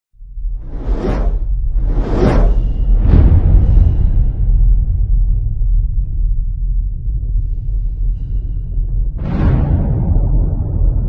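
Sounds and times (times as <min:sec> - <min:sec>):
deep low rumble: 0:00.2 - 0:11.0
cinematic whoosh: 0:00.5 - 0:05.6, 0:09.2 - 0:11.0.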